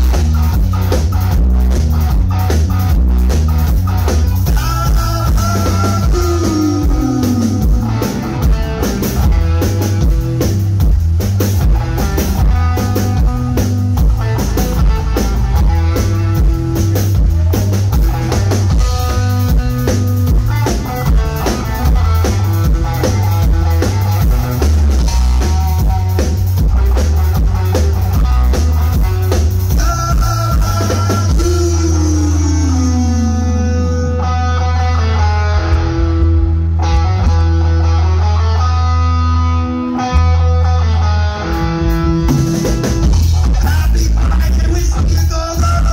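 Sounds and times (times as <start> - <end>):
guitar slide: 0.0 - 10.8, 11.6 - 45.0
rock band playing: 0.0 - 45.9.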